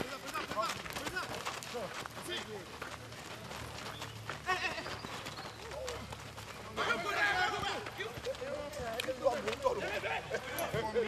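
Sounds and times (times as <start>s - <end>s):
men shouting and calling out: 0.0s - 11.0s.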